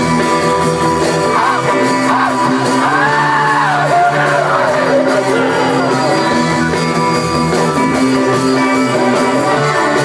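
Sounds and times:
live rock band playing: 0.0s - 10.0s
lead vocal singing: 1.1s - 6.5s.

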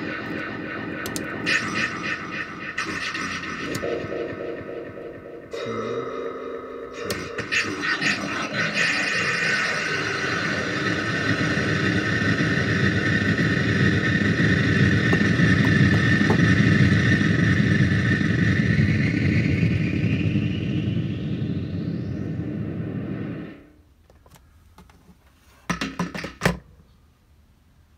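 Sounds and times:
electronic drone with ringing feedback: 0.0s - 23.6s
pitch sweeping upward: 0.0s - 23.7s.

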